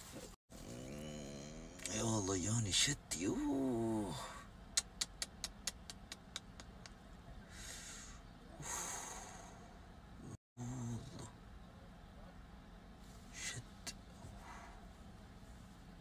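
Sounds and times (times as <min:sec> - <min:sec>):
man groaning: 0:00.6 - 0:01.9, 0:03.4 - 0:04.4
man breathing heavily: 0:07.4 - 0:09.8.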